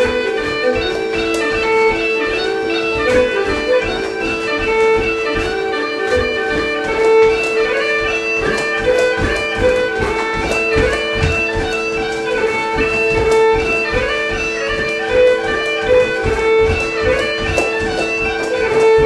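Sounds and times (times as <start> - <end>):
bagpipe tune: 0.0 - 19.0
dance shoes thudding on wooden floor: 0.0 - 19.0.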